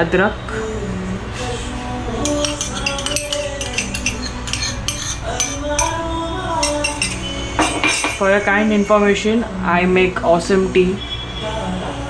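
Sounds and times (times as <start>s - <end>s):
background music: 0.0s - 12.0s
spoon clinking against steel cup: 2.2s - 6.0s, 6.6s - 8.4s.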